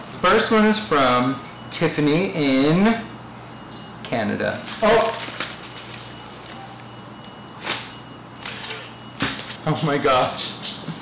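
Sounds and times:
steady low hum: 0.0 - 11.0
paper envelope rustling: 4.6 - 6.9, 9.2 - 9.6.

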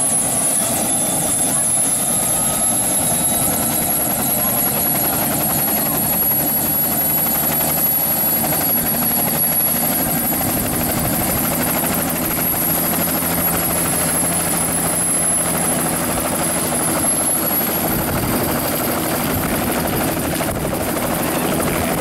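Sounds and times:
helicopter engine and rotor noise: 0.0 - 22.0
helicopter turbine whine: 0.0 - 22.0.

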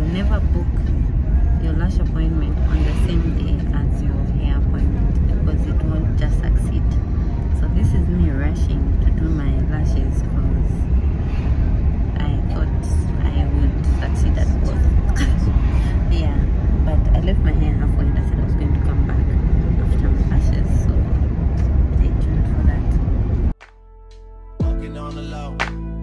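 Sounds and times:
car cabin road and engine rumble: 0.0 - 23.6.

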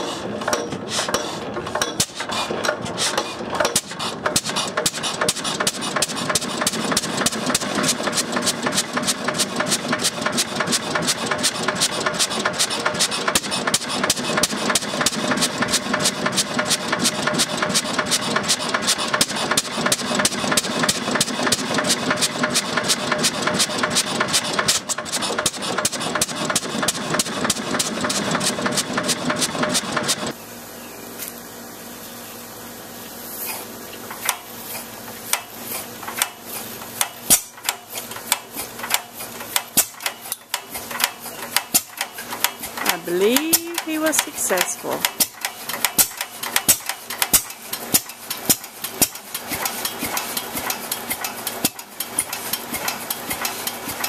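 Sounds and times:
stationary engine running: 0.0 - 30.4, 35.2 - 54.0.

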